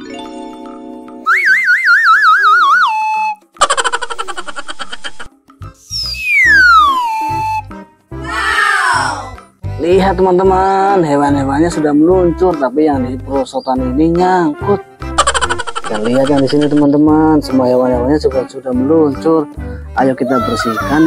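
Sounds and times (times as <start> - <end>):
children's music: 0.0 - 1.5, 2.5 - 21.0
falling whistle glide: 1.3 - 3.4, 5.8 - 7.7.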